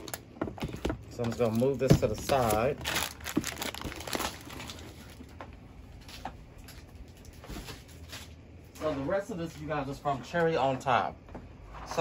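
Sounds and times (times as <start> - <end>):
packages knocking and rustling: 0.0 - 6.4.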